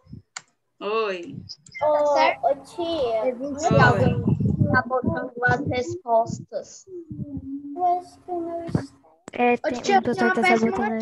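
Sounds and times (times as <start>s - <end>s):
person speaking syllables: 3.5s - 8.9s.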